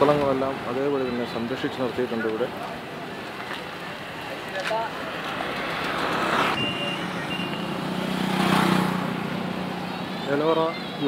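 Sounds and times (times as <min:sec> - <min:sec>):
road traffic noise: 0:00.0 - 0:11.0
vehicle engine noise: 0:00.0 - 0:11.0
short high beeps: 0:06.6 - 0:07.7.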